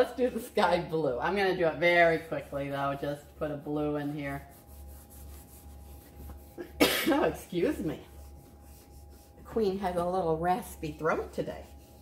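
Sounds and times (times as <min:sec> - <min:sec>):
woman coughing: 0:06.6 - 0:07.4.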